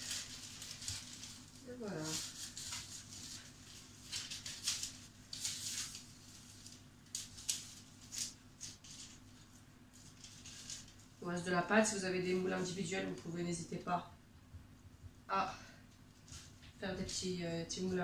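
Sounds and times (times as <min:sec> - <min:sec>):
pastry rustling and scraping: 0:00.0 - 0:11.2
low steady hum: 0:00.0 - 0:18.0.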